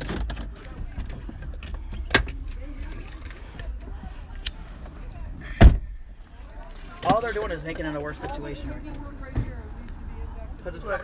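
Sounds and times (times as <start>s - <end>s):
low rumble of car cabin: 0.0s - 11.0s.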